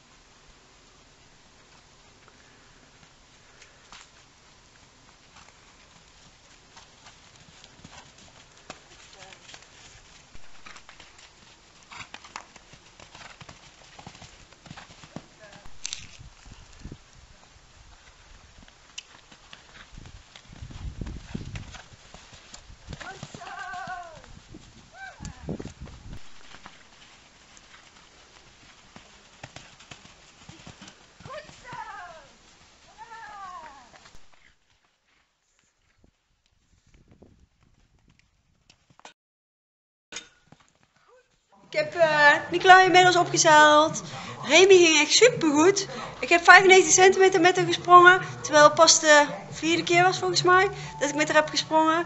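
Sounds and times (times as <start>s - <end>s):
pony hoofbeats on wet sand: 2.9s - 35.3s, 40.5s - 52.0s.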